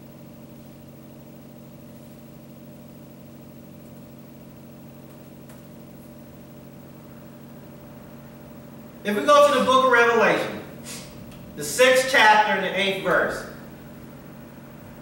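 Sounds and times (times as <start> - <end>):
room equipment hum: 0.0 - 15.0.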